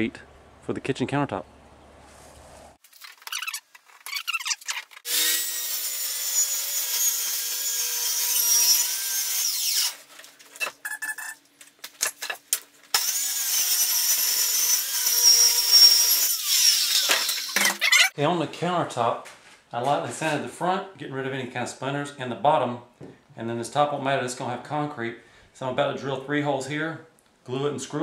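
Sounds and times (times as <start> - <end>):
circular saw cutting plywood: 3.5 - 10.0, 13.0 - 18.1.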